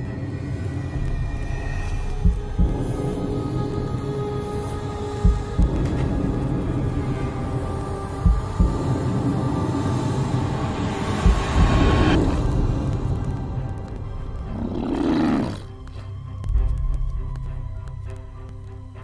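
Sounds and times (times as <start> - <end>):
dark horror film score: 0.0 - 19.0
roar-like sound: 14.5 - 15.7.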